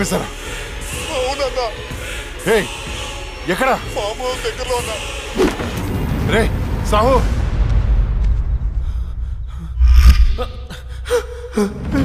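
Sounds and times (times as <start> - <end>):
deep rumble: 7.9 - 10.9
man gasping and straining: 9.1 - 12.0
heavy low boom: 9.8 - 10.6.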